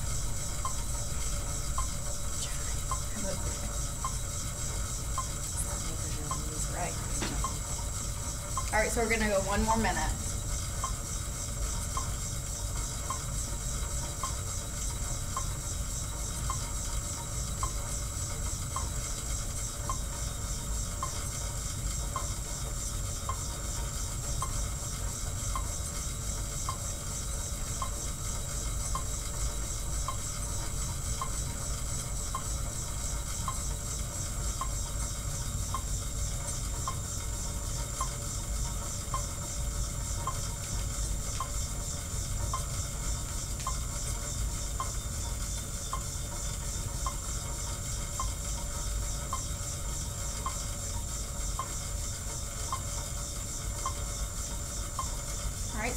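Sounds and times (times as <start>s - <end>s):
exercise bike flywheel whirring: 0.0s - 55.9s.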